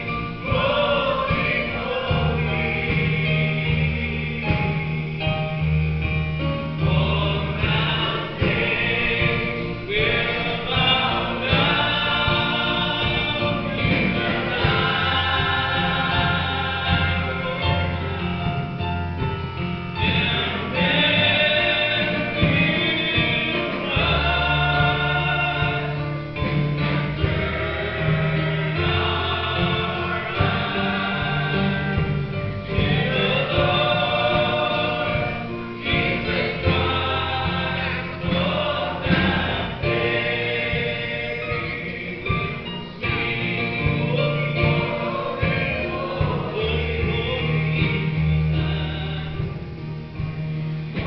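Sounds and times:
choir singing gospel song: 0.0s - 51.0s
guitar accompaniment: 0.0s - 51.0s
male singer on microphone: 6.8s - 18.8s, 19.9s - 50.1s.

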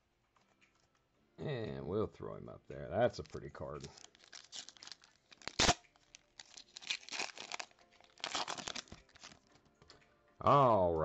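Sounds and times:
wrapper crinkling: 3.1s - 9.5s
wrapper tearing open: 3.2s - 9.5s.

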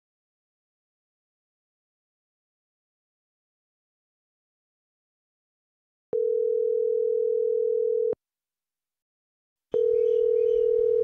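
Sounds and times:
telephone ringback tone: 6.2s - 8.2s, 9.8s - 11.0s.

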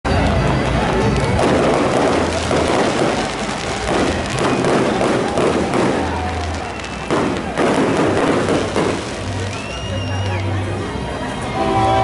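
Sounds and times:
fireworks crackling and banging: 0.1s - 10.9s.

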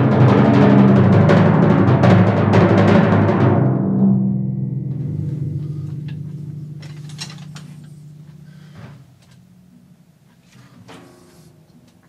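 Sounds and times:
timpani ringing: 0.0s - 12.0s
mallets clicking and rattling: 5.4s - 11.4s.

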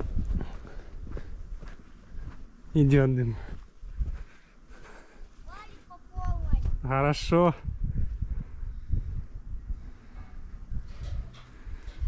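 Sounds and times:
low rumble: 7.7s - 12.0s.

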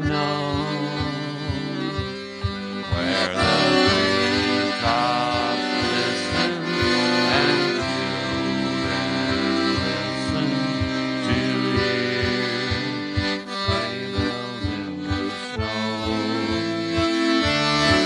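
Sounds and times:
accordion playing a tune: 0.0s - 18.0s
steady bass beat: 0.1s - 18.0s.

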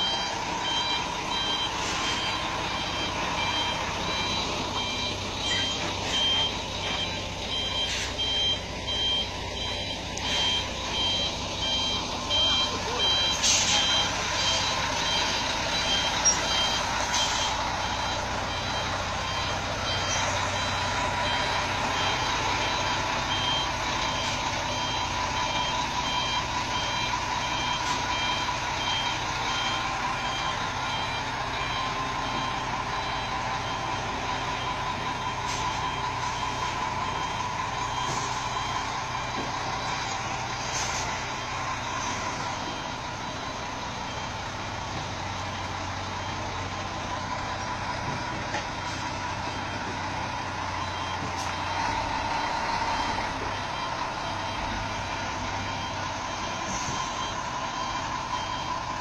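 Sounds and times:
truck engine running: 0.0s - 59.0s
truck reversing beeper: 0.0s - 59.0s.

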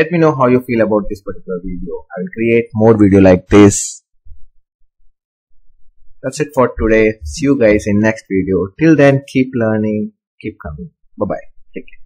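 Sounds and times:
faint low thumps: 4.2s - 7.9s.

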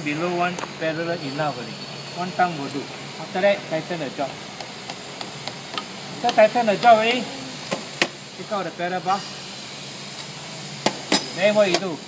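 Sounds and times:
workshop hum: 0.0s - 12.0s.

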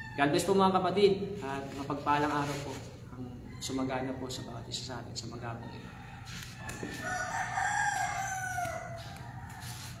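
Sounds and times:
rooster crowing: 0.0s - 0.5s, 3.3s - 10.0s.

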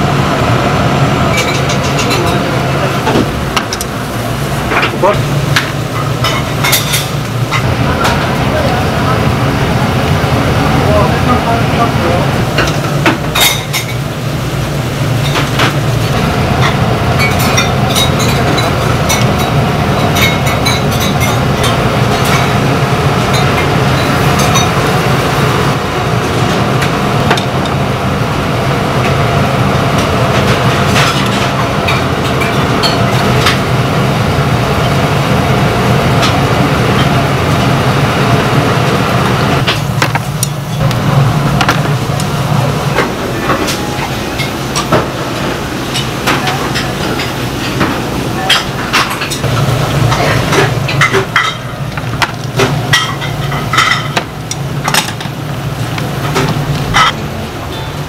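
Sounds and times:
gas burners rushing: 0.0s - 58.0s
dishes and utensils clinking: 1.3s - 2.5s, 4.7s - 8.3s, 12.5s - 14.0s, 15.2s - 22.6s, 30.4s - 33.6s, 42.9s - 55.4s, 56.2s - 58.0s.

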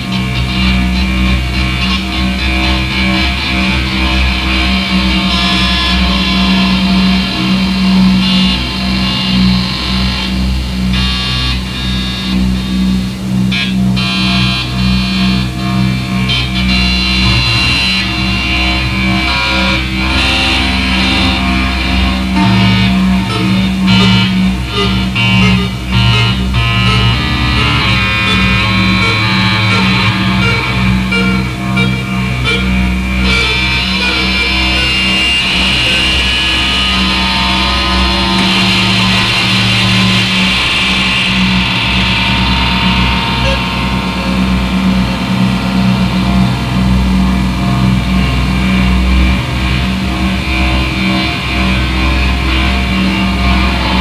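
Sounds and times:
deep bass layer: 0.0s - 54.0s
low tone pulsing rapidly: 0.0s - 54.0s
stacked high tones: 22.4s - 36.0s.

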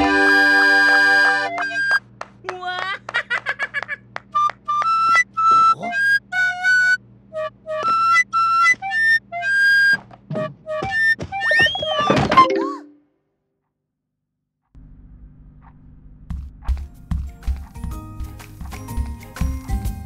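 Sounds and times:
recorder playing melody: 0.0s - 2.0s, 4.4s - 13.0s
steady low hum: 14.8s - 17.4s.

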